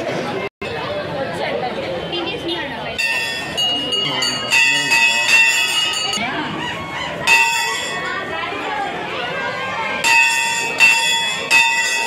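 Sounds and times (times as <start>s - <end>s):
large brass bell ringing: 3.0s - 6.3s, 7.2s - 8.4s, 10.0s - 12.0s.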